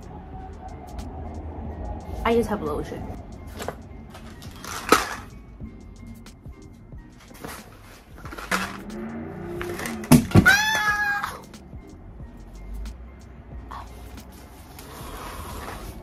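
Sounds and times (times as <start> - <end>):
background music: 0.0 - 16.0
person yelping: 10.3 - 11.4.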